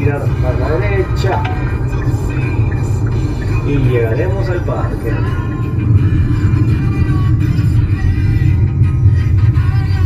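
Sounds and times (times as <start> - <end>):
car cabin rumble: 0.0 - 10.0
rock music from car radio: 0.0 - 10.0.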